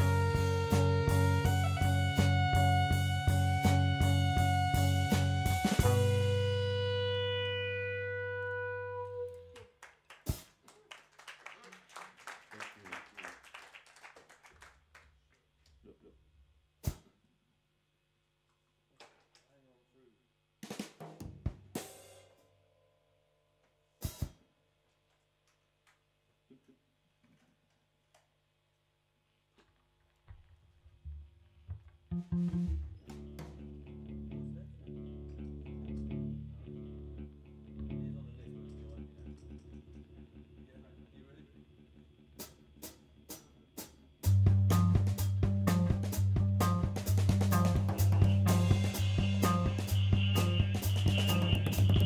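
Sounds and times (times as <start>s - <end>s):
drum and cymbal strikes: 0.0s - 6.7s, 16.8s - 17.2s, 20.6s - 22.6s, 23.9s - 24.5s, 42.4s - 52.0s
low bass note: 0.0s - 9.4s, 32.1s - 39.0s, 44.4s - 52.0s
sustained keyboard tone: 32.1s - 33.0s.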